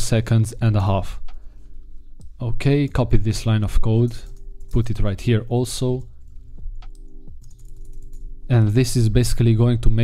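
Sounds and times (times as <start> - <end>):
computer keyboard keystrokes: 6.0 - 8.3.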